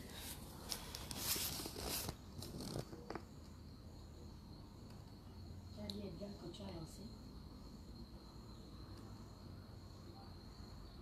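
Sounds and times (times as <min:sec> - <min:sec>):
faint steady high tone: 0:03.8 - 0:11.0.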